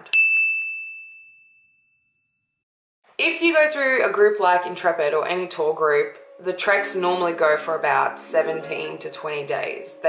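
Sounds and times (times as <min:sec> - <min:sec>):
bell ding: 0:00.0 - 0:02.5.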